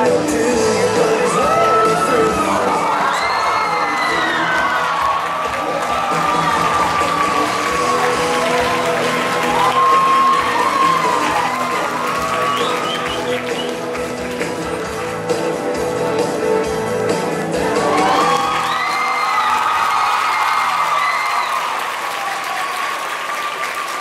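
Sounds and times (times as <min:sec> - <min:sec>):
country song: 0:00.0 - 0:18.6
audience cheering and screaming: 0:01.0 - 0:14.3, 0:17.6 - 0:24.0.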